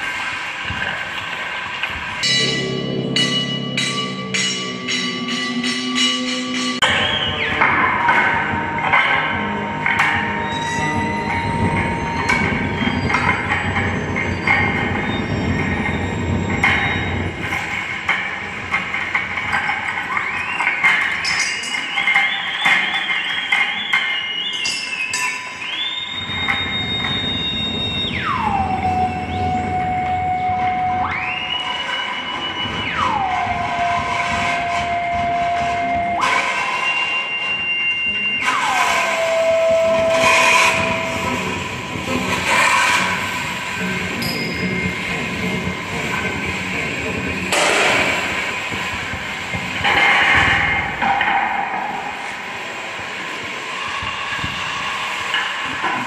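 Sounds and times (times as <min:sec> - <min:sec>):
bronze bowls ringing: 0:02.2 - 0:06.9, 0:39.2 - 0:51.4.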